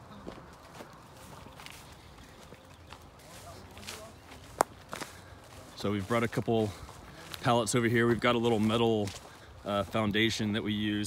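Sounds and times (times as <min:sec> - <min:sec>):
footsteps through grass: 0:00.0 - 0:11.0
man talking: 0:03.2 - 0:04.4, 0:05.5 - 0:11.0.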